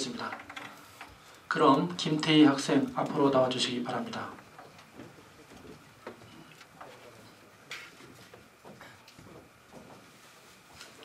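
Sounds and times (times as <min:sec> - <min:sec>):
faint clicks and light knocks: 0:04.3 - 0:10.1.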